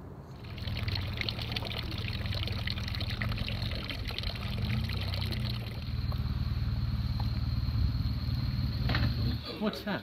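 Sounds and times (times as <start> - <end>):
motorcycle engine idling: 5.8 - 9.4.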